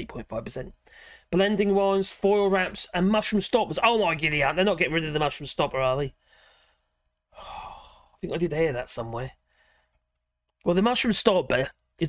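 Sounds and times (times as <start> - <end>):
man sighing: 7.3 - 8.2.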